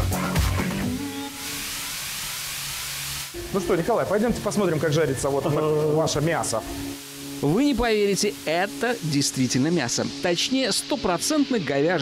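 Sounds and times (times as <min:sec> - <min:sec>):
steady hiss: 0:00.6 - 0:12.0.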